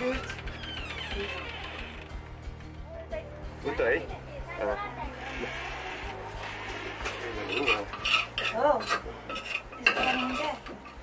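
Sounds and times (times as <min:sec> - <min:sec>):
metal spoon stirring in pot: 0:07.2 - 0:11.0.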